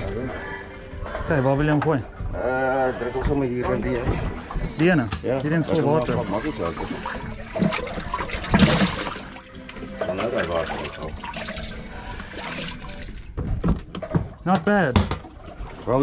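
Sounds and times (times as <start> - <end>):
water sloshing and splashing: 0.0 - 16.0.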